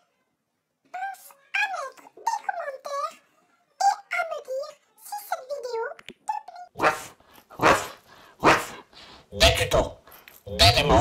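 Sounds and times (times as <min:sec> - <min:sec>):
dog barking: 0:06.8 - 0:08.8.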